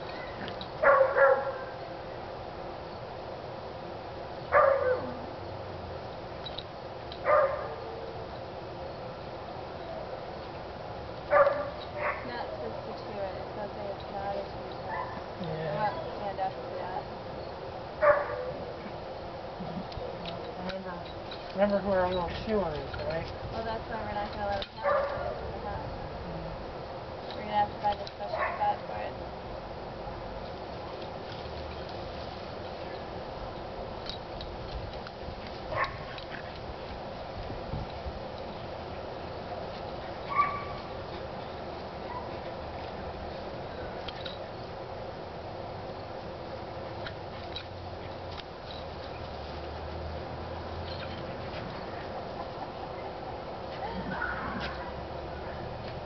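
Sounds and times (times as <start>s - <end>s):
small dog barking: 0.2s - 1.8s, 4.5s - 5.2s, 7.2s - 7.8s, 11.3s - 12.3s, 14.9s - 15.2s, 18.0s - 18.6s, 24.8s - 25.4s, 40.3s - 40.8s
dog yelping: 18.0s - 18.6s, 40.3s - 40.9s, 53.8s - 54.9s.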